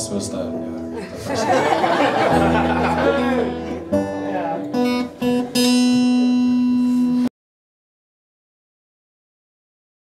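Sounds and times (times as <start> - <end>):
acoustic guitar picking notes: 0.0 - 7.3.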